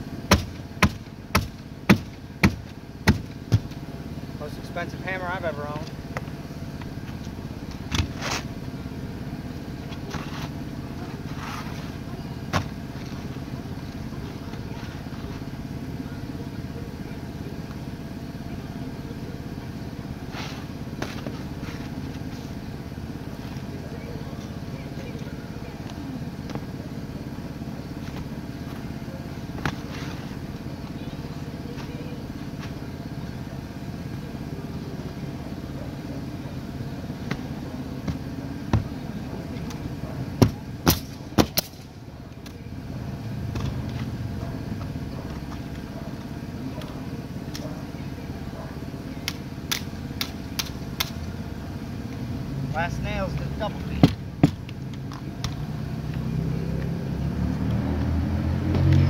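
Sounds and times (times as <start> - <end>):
low mechanical running noise: 0.0 - 59.0
pneumatic nailer shots: 0.3 - 3.8, 40.4 - 41.8.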